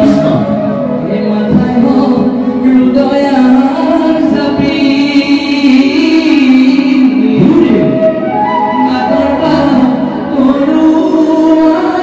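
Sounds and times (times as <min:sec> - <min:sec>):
man singing into a microphone: 0:00.0 - 0:12.0
group singing in chorus: 0:08.4 - 0:12.0.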